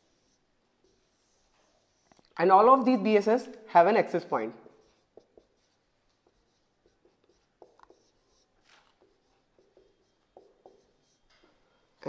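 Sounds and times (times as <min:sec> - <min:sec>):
marker pen on whiteboard: 0:00.0 - 0:12.0.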